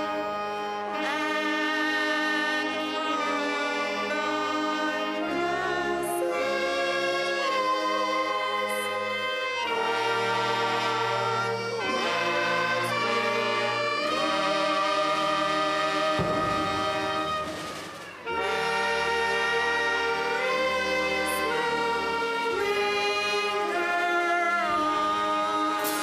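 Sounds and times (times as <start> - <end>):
brass band playing held chords: 0.0 - 26.0
group singing along: 0.0 - 26.0.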